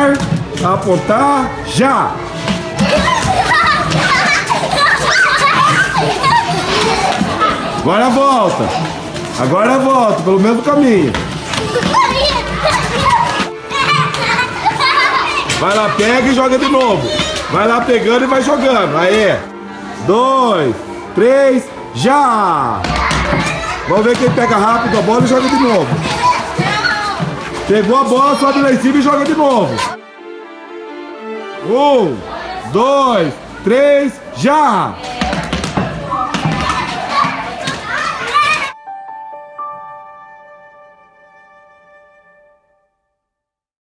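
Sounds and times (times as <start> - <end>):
children calling out and shouting: 1.4 - 7.9, 11.4 - 19.9, 21.7 - 30.0, 34.3 - 39.0
sustained piano notes: 38.8 - 42.9.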